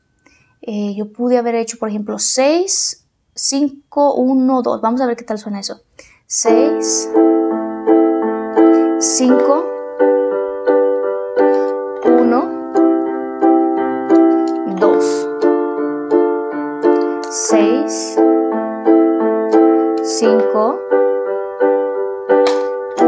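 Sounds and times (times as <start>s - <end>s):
electronic piano block chords: 6.4s - 23.0s.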